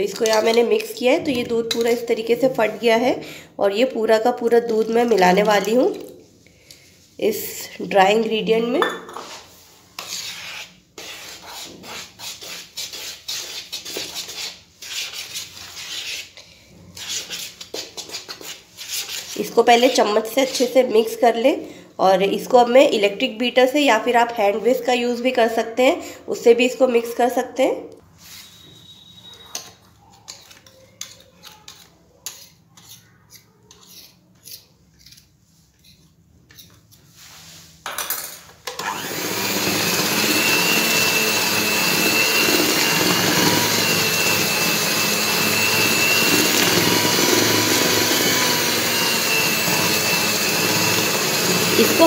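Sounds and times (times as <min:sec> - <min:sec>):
spoon stirring in plastic bowl: 0:00.0 - 0:03.0, 0:04.4 - 0:06.2, 0:17.0 - 0:20.8, 0:29.2 - 0:37.2
electric hand mixer whining: 0:38.7 - 0:52.0.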